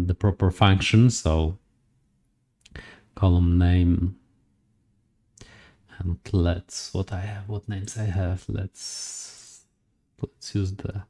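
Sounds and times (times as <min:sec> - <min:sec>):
man speaking: 0:00.0 - 0:01.6, 0:03.2 - 0:04.2, 0:05.9 - 0:09.6, 0:10.2 - 0:11.0
faint breath: 0:02.7 - 0:03.1, 0:05.4 - 0:05.9.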